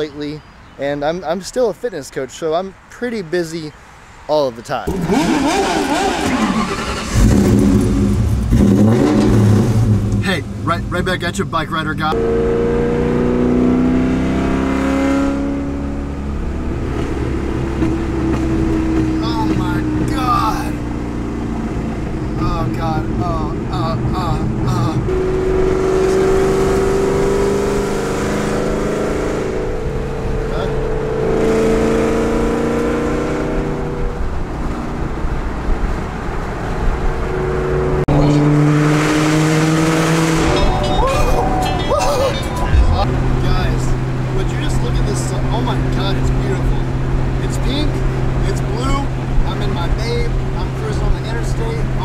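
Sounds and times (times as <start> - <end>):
car engine revving while driving: 4.9 - 40.9, 42.4 - 52.0.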